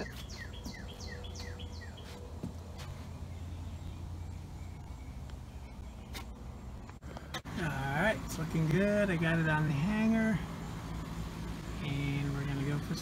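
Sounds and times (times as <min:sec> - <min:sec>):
songbird chirping: 0:00.0 - 0:07.4
low outdoor rumble: 0:00.0 - 0:13.0.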